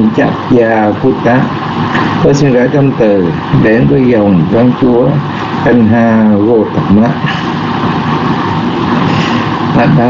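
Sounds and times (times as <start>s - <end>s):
loud rushing static noise: 0.0s - 10.0s.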